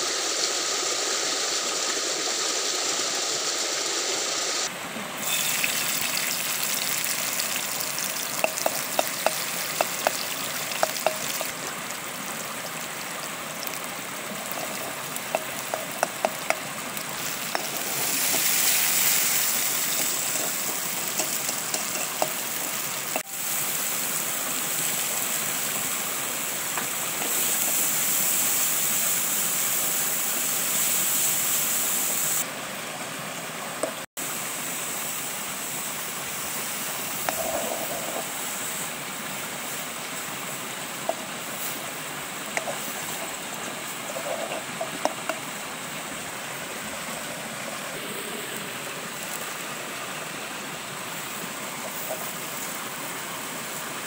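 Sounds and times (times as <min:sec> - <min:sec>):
stream rushing: 0:00.0 - 0:27.2, 0:32.4 - 0:54.0
food frying in oil: 0:04.5 - 0:32.4, 0:33.8 - 0:53.0
spoon clicking against pan: 0:08.4 - 0:10.2, 0:10.8 - 0:11.5.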